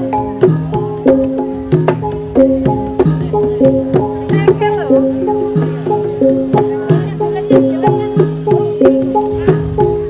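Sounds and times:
gamelan metal keys melody: 0:00.0 - 0:10.0
sharp drum strokes: 0:00.0 - 0:10.0.

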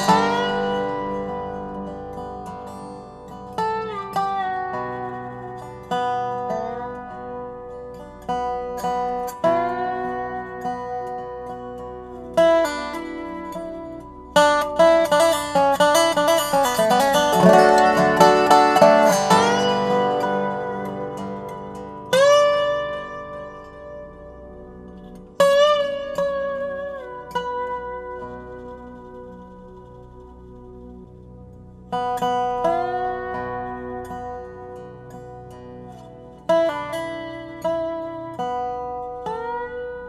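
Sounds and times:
resonator guitar slide notes: 0:00.0 - 0:40.0.

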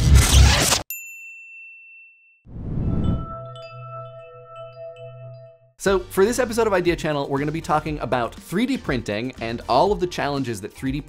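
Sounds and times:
high bell-like ding: 0:00.9 - 0:05.8.

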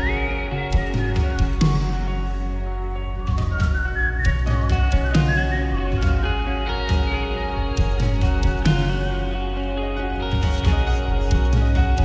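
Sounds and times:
whistled melody: 0:00.0 - 0:11.3
soft keyboard and guitar music: 0:00.0 - 0:12.0.

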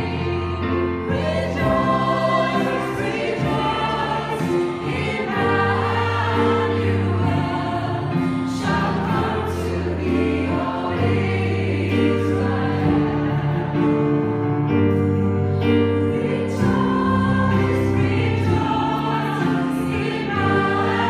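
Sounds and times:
vocal ensemble singing a carol: 0:00.0 - 0:14.9, 0:15.5 - 0:21.0.

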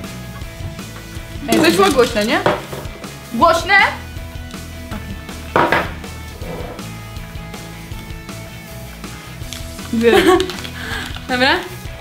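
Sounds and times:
quiet music: 0:00.0 - 0:12.0
paper slips rustling in plastic bucket: 0:09.4 - 0:11.8.

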